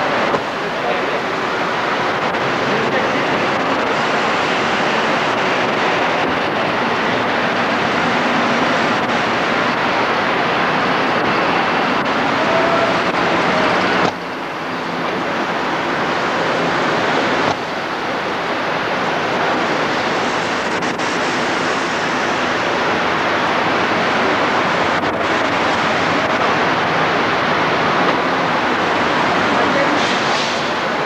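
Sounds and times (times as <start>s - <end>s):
rushing noise inside car cabin: 0.0s - 31.0s.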